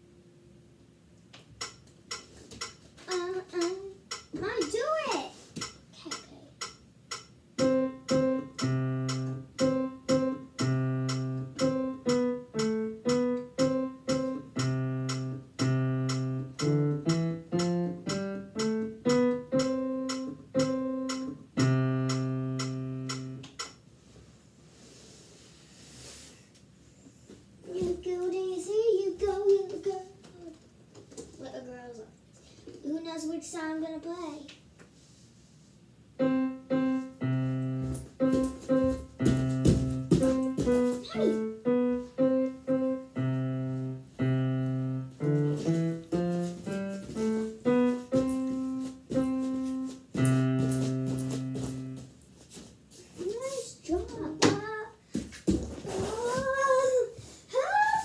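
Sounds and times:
digital piano chords: 0:06.6 - 0:23.8, 0:36.2 - 0:52.0.

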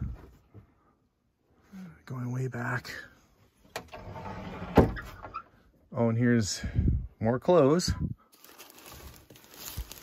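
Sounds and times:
closet door sliding open: 0:03.7 - 0:05.4.

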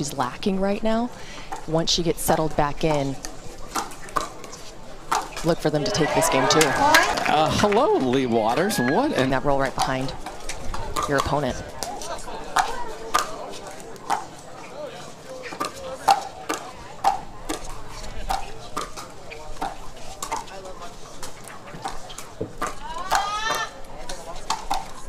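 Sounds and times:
crowd murmur: 0:00.0 - 0:25.0.

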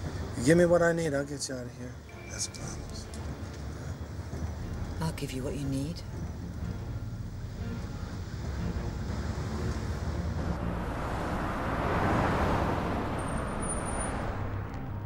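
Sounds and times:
car road and engine rumble: 0:02.7 - 0:15.0
vehicle passing by: 0:08.3 - 0:15.0.

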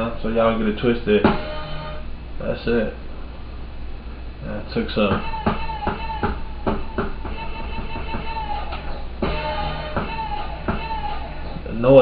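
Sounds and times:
hip-hop beat from sampler: 0:06.9 - 0:11.3.

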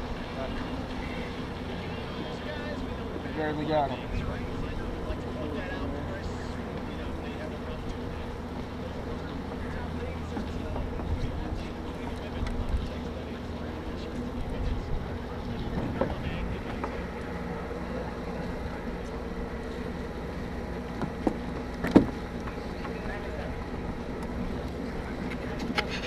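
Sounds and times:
sea wash: 0:00.0 - 0:26.0.

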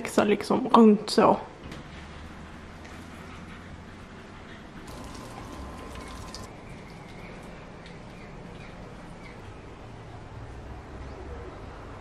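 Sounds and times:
water trickling from watering can: 0:04.9 - 0:08.9.

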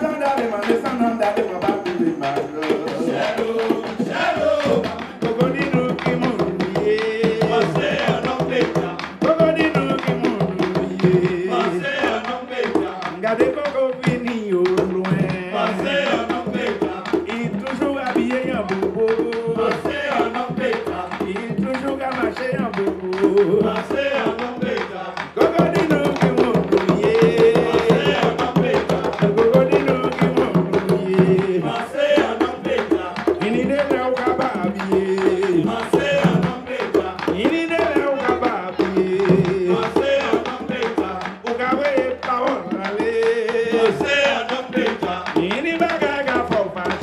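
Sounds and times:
hand drums beating: 0:00.0 - 0:47.0
person singing: 0:00.0 - 0:47.0
voices chanting held notes: 0:00.0 - 0:47.0.

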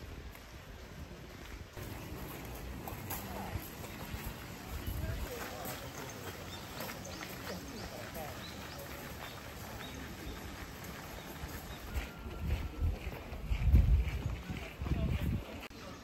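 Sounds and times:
people talking faintly: 0:01.8 - 0:16.0.

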